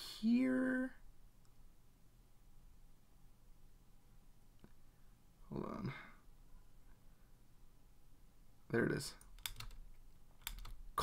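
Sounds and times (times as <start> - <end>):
computer keyboard keys clicking: 9.2 - 9.8, 10.4 - 10.8.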